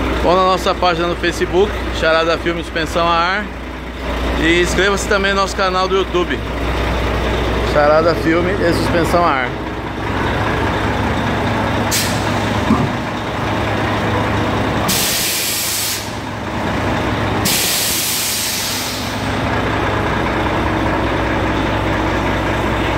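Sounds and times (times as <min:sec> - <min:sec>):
diesel truck engine idling: 0:00.0 - 0:22.9
compressed air hissing: 0:11.9 - 0:12.5, 0:14.9 - 0:16.2, 0:17.4 - 0:19.3.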